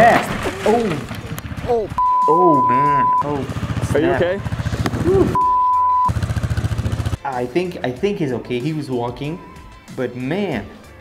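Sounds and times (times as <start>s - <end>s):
quad engine running: 0.7s - 7.2s
censor bleep: 2.0s - 3.3s, 5.4s - 6.1s.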